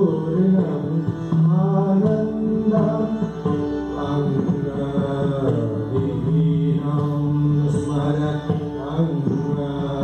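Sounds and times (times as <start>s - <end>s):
man singing devotional song: 0.0s - 10.0s
sitar: 0.0s - 10.0s.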